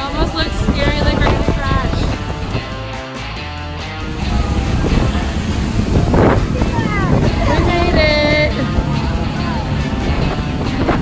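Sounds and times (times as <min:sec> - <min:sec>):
people's voices: 0:00.0 - 0:02.8, 0:04.0 - 0:11.0
water rushing past: 0:00.0 - 0:03.0, 0:04.0 - 0:11.0
wind on microphone: 0:00.0 - 0:03.0, 0:04.0 - 0:11.0
boat engine rumble: 0:00.0 - 0:03.1, 0:03.8 - 0:11.0.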